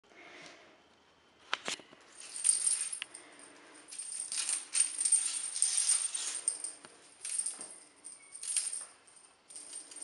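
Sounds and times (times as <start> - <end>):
small bell jingling: 2.2 - 10.0.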